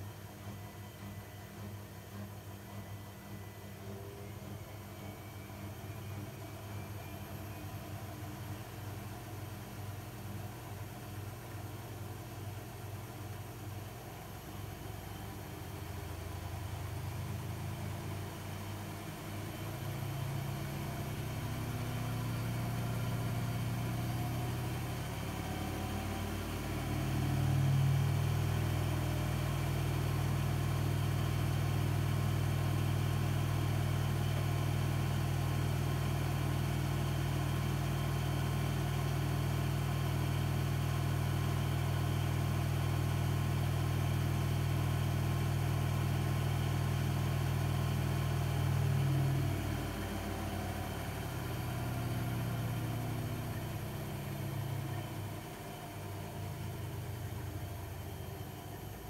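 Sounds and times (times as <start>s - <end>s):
washing machine spinning: 26.1s - 59.0s.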